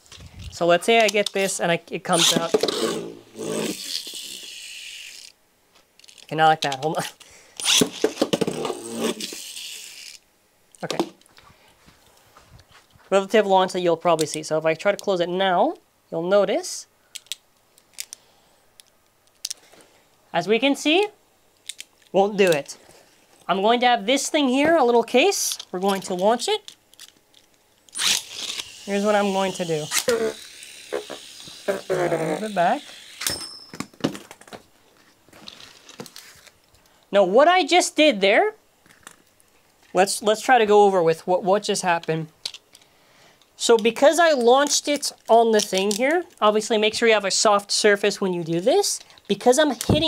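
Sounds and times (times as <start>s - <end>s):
high metallic ring: 33.2s - 33.8s.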